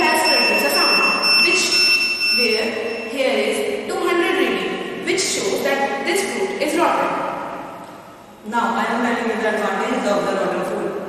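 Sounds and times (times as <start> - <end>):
electronic buzzer high-pitched tone: 0.0 - 3.2.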